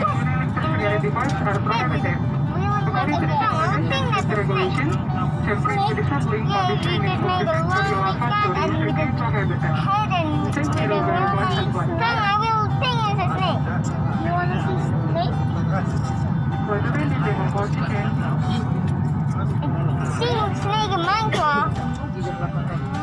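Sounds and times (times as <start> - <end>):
airliner cabin hum: 0.0 - 23.0
music: 0.0 - 23.0.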